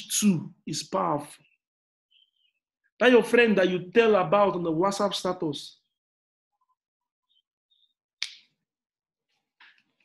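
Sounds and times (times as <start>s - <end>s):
sharp snap: 8.2s - 8.5s.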